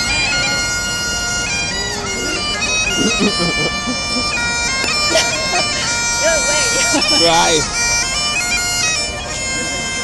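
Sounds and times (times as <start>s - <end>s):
bagpipe playing: 0.0s - 10.0s.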